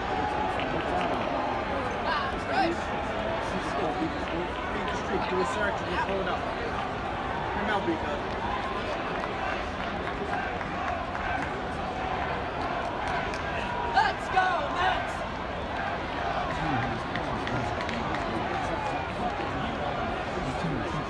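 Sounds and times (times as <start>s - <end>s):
crowd chattering: 0.0s - 21.0s.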